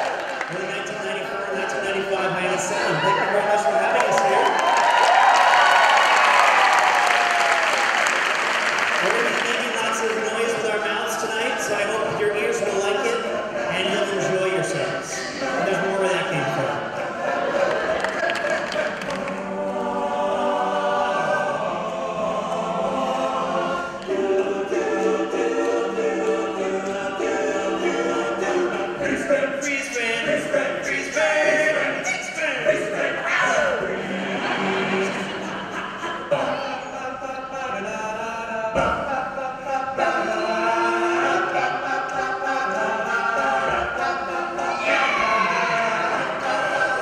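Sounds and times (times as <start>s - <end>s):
male group singing in harmony: 9.0s - 47.0s.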